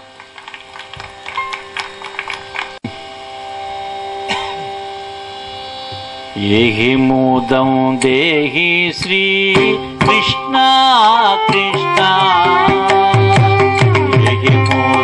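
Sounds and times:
steady hum: 0.0 - 15.0
man singing devotional melody: 6.4 - 15.0.

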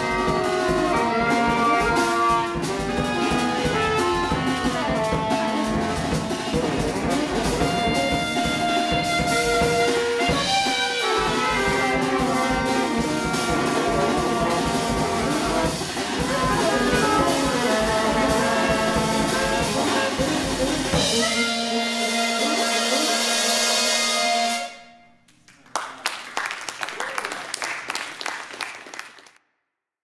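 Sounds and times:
saxophone quartet with drums: 0.0 - 25.0
audience applause: 12.5 - 20.6, 25.3 - 29.4.

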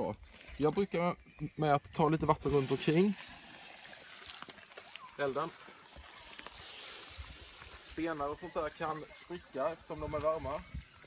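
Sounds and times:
water hissing on hot stones: 2.4 - 11.0.

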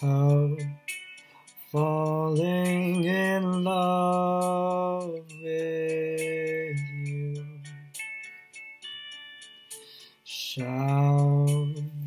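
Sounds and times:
man singing long-held notes: 0.0 - 0.8, 1.7 - 7.8, 10.3 - 12.0
soft karaoke backing track: 0.0 - 12.0.

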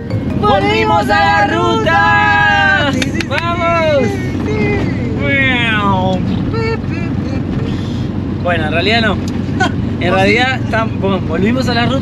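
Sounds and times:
van engine running: 0.0 - 12.0
people laughing and cheering: 0.2 - 5.4.

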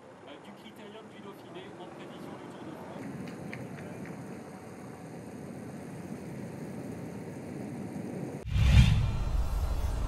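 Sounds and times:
wind noise: 2.4 - 10.0.

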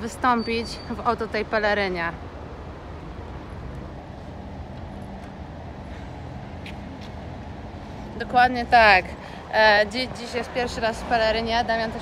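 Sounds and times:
low rumble of road traffic: 0.0 - 12.0.

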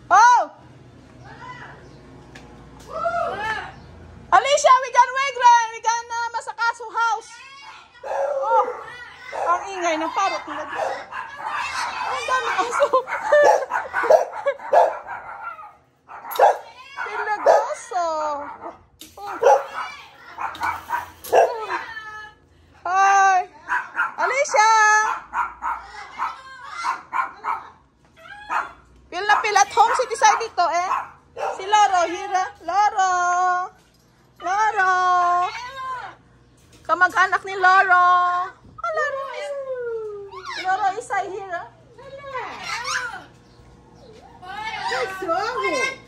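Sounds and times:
dogs barking: 8.0 - 21.8, 23.6 - 27.8, 28.4 - 31.9.

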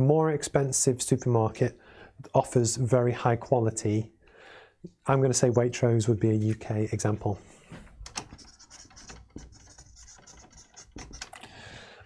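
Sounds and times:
marker pen writing on paper: 8.2 - 11.4.

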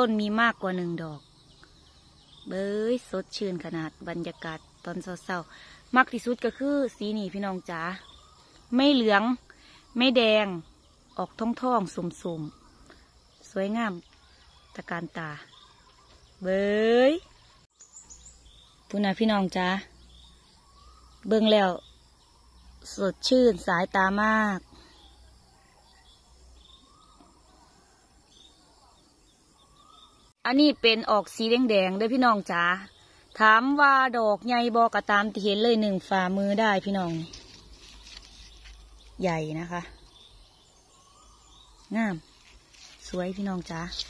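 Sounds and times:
woman speaking: 0.0 - 1.2, 2.5 - 8.0, 8.7 - 9.4, 10.0 - 10.6, 11.2 - 12.5, 13.5 - 14.0, 14.8 - 15.5, 16.4 - 17.2, 18.9 - 19.9, 21.2 - 21.8, 22.9 - 24.7, 30.5 - 37.4, 39.2 - 40.0, 41.9 - 42.3, 43.0 - 44.0
distant bird chirps: 0.0 - 44.0.

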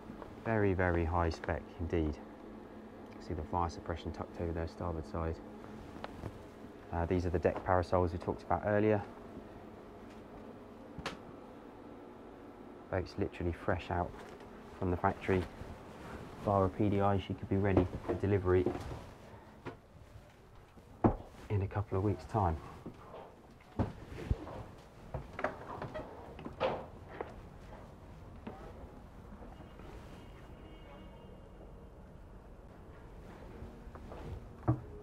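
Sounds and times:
faint background hum: 0.0 - 35.0.

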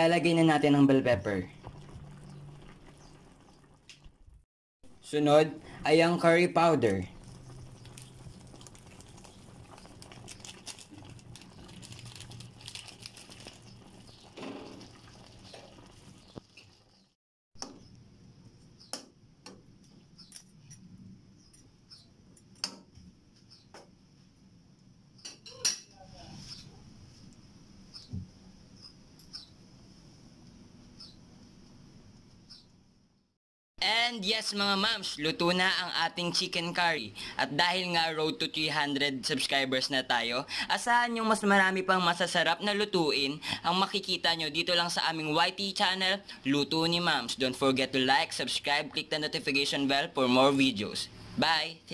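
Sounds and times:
curry simmering in a wok: 7.1 - 17.1.

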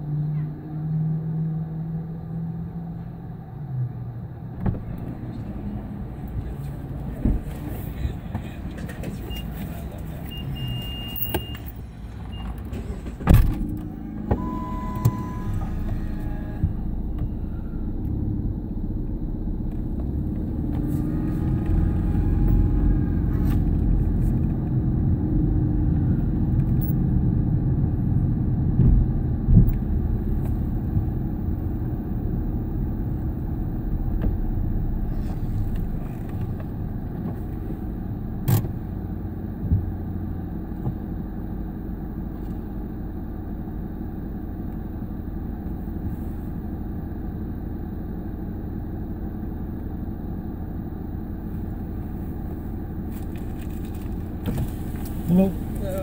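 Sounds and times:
car engine and road rumble: 0.0 - 56.0
short steady tone: 14.3 - 17.9.

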